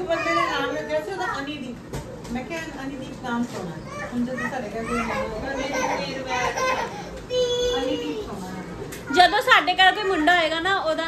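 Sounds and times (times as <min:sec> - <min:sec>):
young children chattering: 0:03.8 - 0:10.5.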